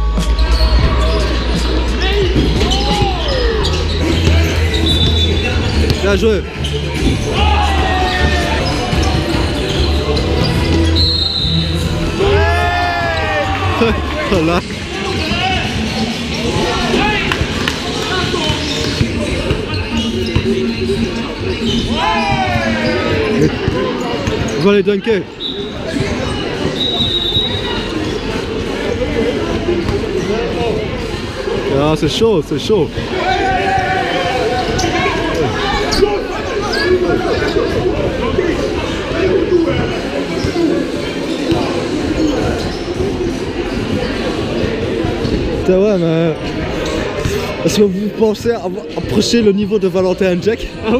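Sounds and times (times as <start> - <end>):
music in sports hall: 0.0 - 50.9
players' voices: 0.0 - 50.9
basketball bouncing in hall: 0.1 - 6.1, 15.1 - 24.6.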